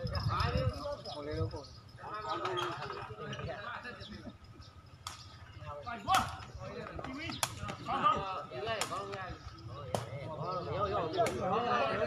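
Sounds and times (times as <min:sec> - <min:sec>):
men chattering: 0:00.0 - 0:12.0.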